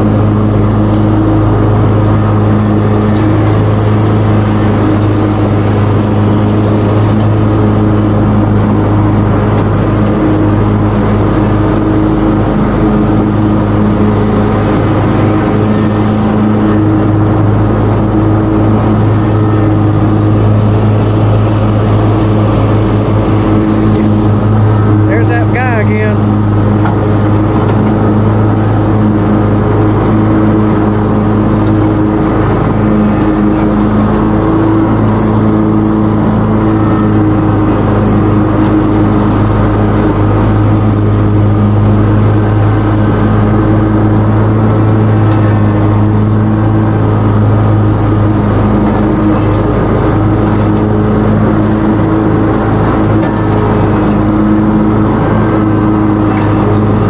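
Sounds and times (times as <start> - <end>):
lawn mower engine hum: 0.0 - 57.0.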